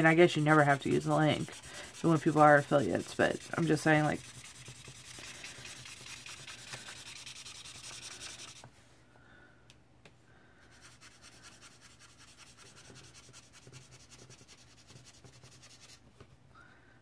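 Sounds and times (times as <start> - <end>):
marker scratching on paper: 0.0 - 8.6, 10.8 - 16.0.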